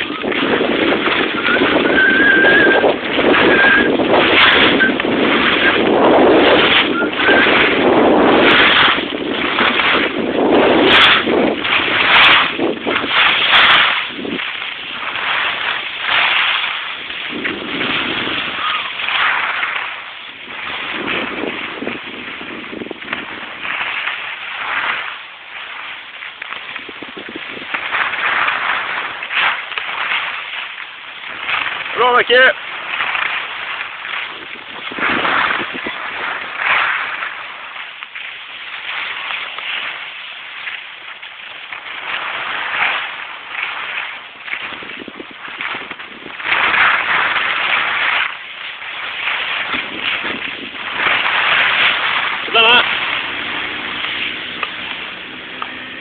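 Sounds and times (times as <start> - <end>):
skis scraping over snow: 0.0 - 56.0
wind buffeting microphone: 0.0 - 56.0.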